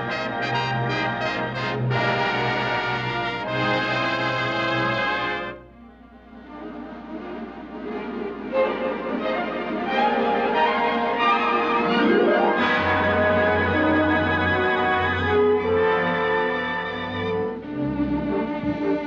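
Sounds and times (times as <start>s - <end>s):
orchestral dance music with brass: 0.0s - 19.0s.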